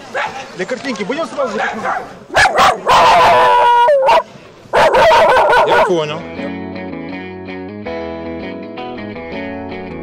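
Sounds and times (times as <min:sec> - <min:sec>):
dog howling bark: 0:01.6 - 0:06.1
dog barking: 0:01.6 - 0:06.2.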